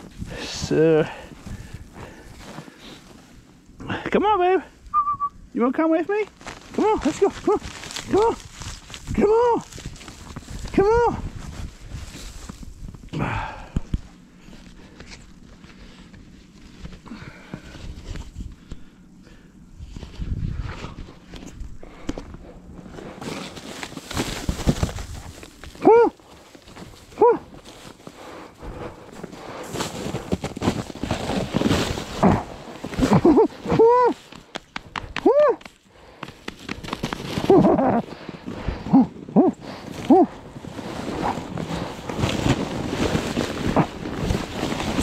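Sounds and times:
insulation sheet crinkling: 6.1s - 12.9s, 22.5s - 38.4s, 39.6s - 45.0s
footsteps crunching in snow: 6.2s - 13.1s, 19.8s - 45.0s.

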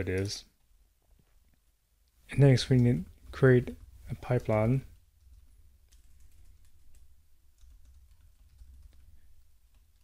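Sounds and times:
typing on keyboard: 2.7s - 4.6s, 5.2s - 10.0s.

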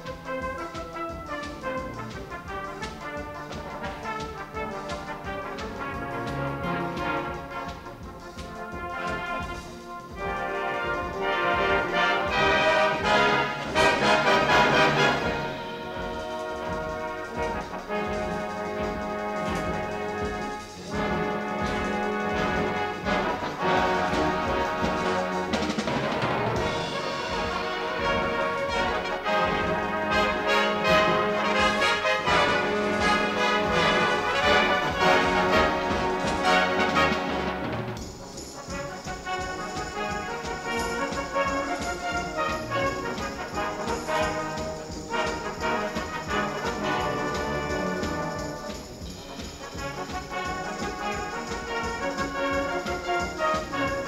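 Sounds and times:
brass band playing: 0.0s - 54.0s.

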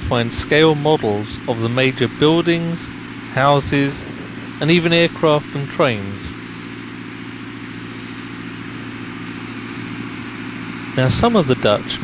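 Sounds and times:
low engine hum: 0.0s - 12.0s.

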